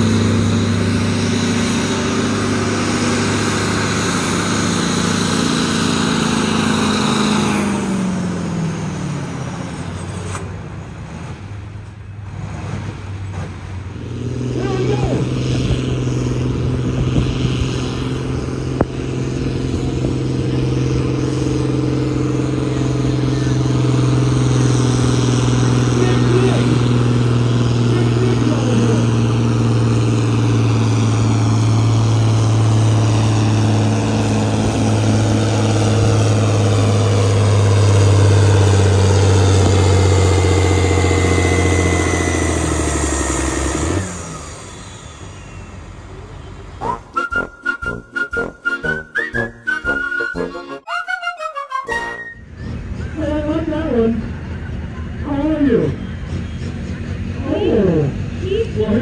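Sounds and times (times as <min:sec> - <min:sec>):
tractor engine under heavy load: 0:00.0 - 0:50.9, 0:51.9 - 0:59.0.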